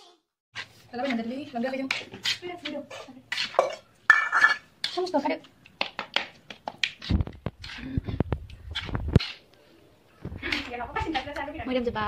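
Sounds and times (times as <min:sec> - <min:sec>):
metal spoon scraping ceramic plate: 0:01.9 - 0:05.1.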